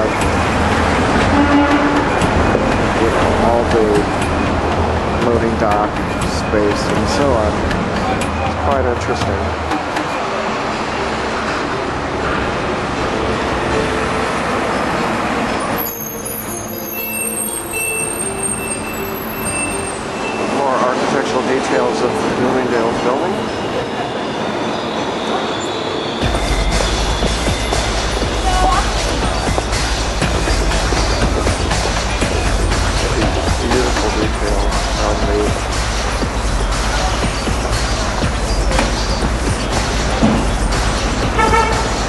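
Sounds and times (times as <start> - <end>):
heavy low street rumble: 0.0 - 42.0
road traffic: 0.0 - 42.0
thin high whistling tones: 15.7 - 20.9, 22.8 - 28.9.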